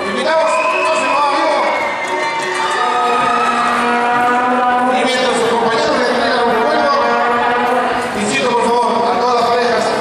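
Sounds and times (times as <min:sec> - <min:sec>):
live folk music long note: 0:02.0 - 0:09.2.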